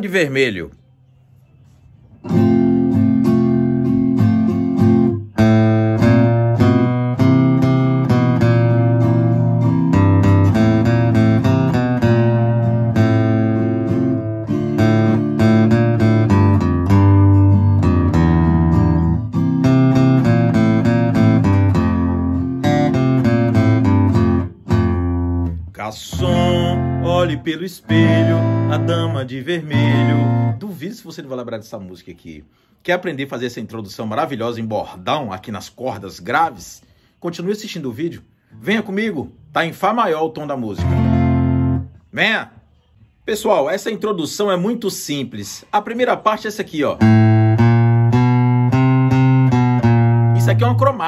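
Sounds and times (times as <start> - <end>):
acoustic guitar riff: 1.6 - 31.0, 38.5 - 42.7, 45.6 - 51.0.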